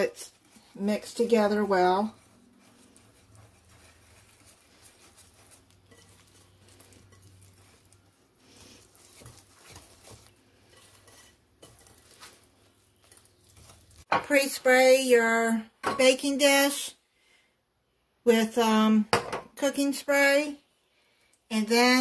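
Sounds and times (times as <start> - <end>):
whisk scraping batter: 0.0 - 14.1.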